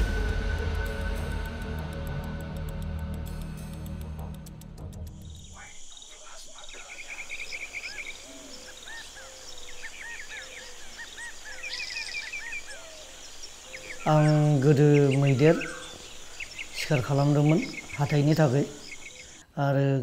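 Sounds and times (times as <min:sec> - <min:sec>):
high insect drone: 0:00.0 - 0:19.4
birds chirping: 0:04.8 - 0:19.5.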